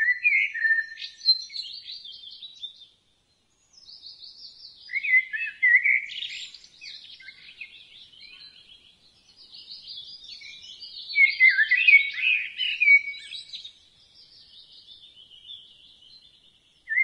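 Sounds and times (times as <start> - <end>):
birds chirping and trilling: 0.0 - 17.0.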